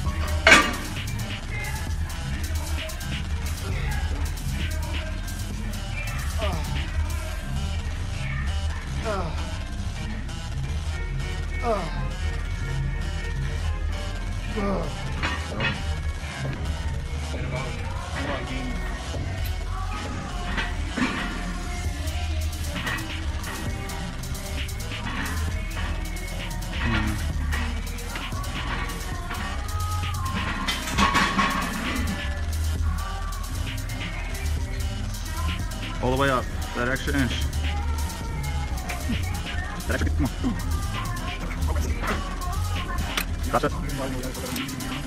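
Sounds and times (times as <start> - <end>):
background music: 0.0 - 45.0.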